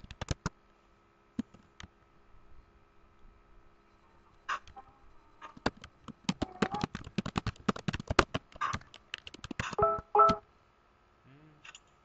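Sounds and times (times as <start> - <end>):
keyboard typing: 0.0 - 0.5, 5.4 - 10.4.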